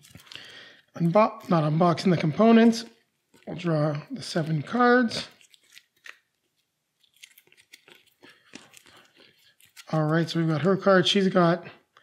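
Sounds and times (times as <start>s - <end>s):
playing cards clicking and rustling: 0.0s - 1.6s, 4.2s - 10.8s.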